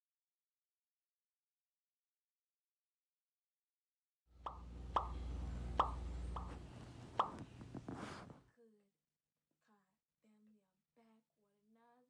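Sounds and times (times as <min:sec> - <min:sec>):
low steady hum: 0:04.4 - 0:08.4
sharp pops dropping in pitch: 0:04.5 - 0:07.5.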